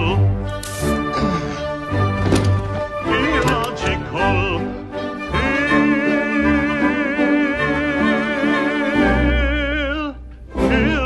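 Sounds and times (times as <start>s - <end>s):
operatic singing: 0.0s - 11.0s
orchestral accompaniment: 0.0s - 11.0s.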